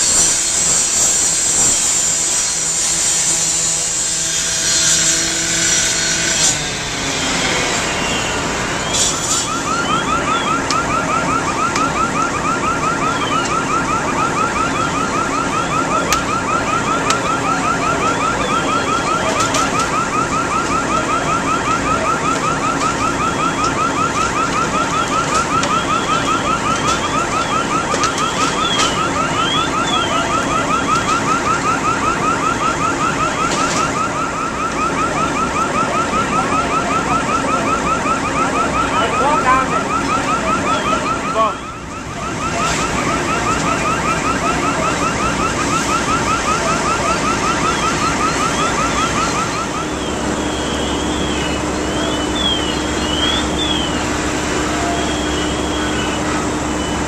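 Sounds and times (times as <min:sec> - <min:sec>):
electronic alarm warbling: 0:00.0 - 0:57.0.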